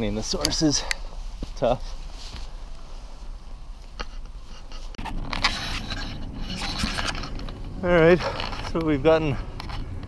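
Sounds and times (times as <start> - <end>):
camera scraping against clothing: 0.0 - 10.0.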